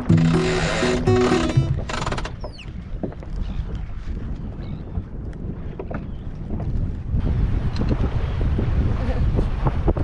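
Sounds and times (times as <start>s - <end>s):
water moving around hull: 0.0s - 10.0s
wind buffeting microphone: 1.7s - 10.0s.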